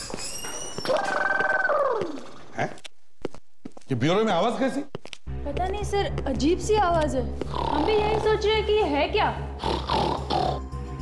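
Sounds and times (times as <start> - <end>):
man snoring loudly: 9.6 - 10.8.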